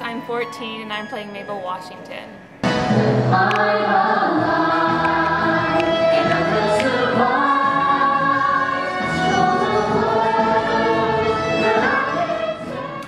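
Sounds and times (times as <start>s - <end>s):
accompanying music: 0.0s - 13.0s
young performers singing in chorus: 2.7s - 13.0s.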